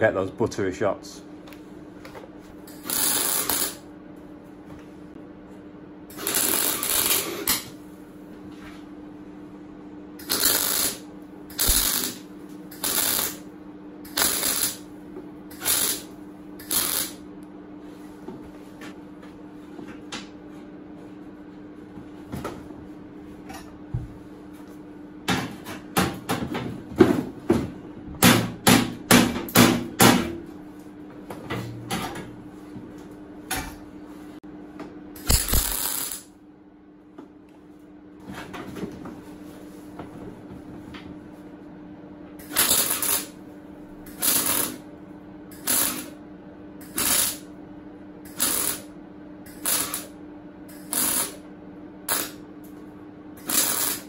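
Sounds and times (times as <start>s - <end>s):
steady low hum: 0.0s - 54.0s
welder arc bursts: 2.7s - 3.8s, 6.1s - 7.6s, 10.2s - 13.5s, 14.1s - 14.9s, 15.5s - 17.2s, 35.2s - 36.3s, 42.4s - 43.4s, 44.1s - 44.8s, 45.6s - 46.2s, 46.9s - 47.5s, 48.3s - 48.9s, 49.5s - 51.4s, 52.1s - 52.4s, 53.4s - 54.0s.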